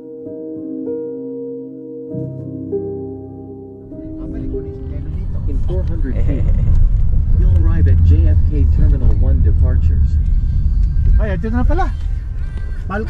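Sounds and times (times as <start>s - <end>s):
car road and engine rumble: 3.8s - 13.0s.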